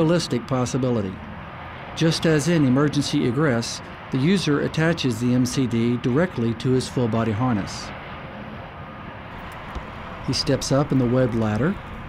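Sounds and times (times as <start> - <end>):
low rumble of vehicle noise: 0.0 - 12.0.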